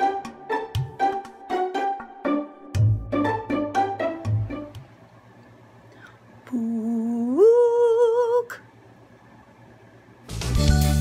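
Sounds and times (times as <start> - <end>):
woman humming: 6.4 - 8.7.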